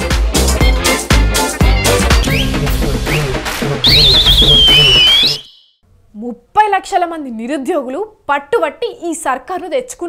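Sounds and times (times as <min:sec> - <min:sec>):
dance music beat: 0:00.0 - 0:05.5
high warbling whistle: 0:01.7 - 0:05.8.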